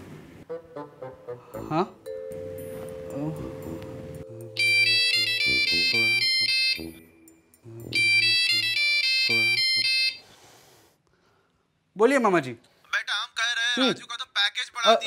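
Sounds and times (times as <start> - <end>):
phone ringtone electronic melody: 2.0 - 10.2.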